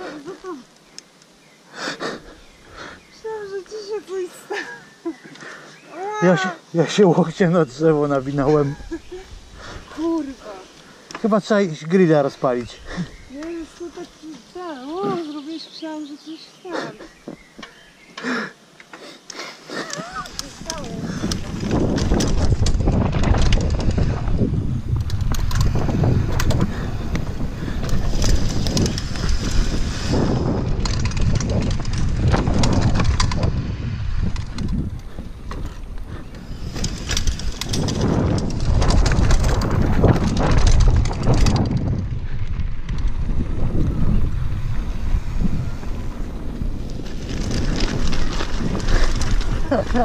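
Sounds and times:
wind buffeting microphone: 7.2 - 18.1, 19.8 - 50.0
bike tyres rumbling on dirt: 19.8 - 50.0
bike rattling over bumps: 19.9 - 50.0.

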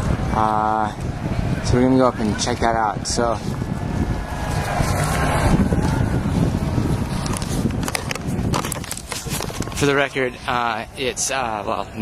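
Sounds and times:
wind rumbling on microphone: 0.0 - 12.0
camera handling noise: 7.0 - 9.9.

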